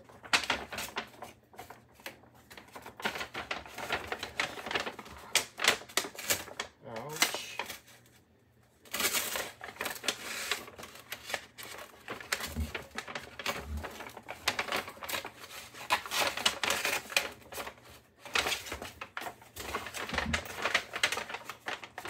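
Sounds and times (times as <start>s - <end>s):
paper bag rustling: 0.0s - 8.2s, 8.9s - 22.0s.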